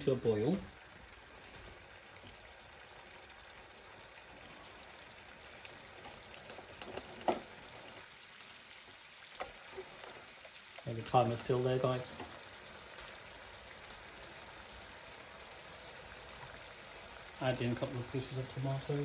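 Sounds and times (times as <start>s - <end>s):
sauce bubbling and hissing: 0.0s - 19.0s
sauce popping: 0.8s - 17.4s.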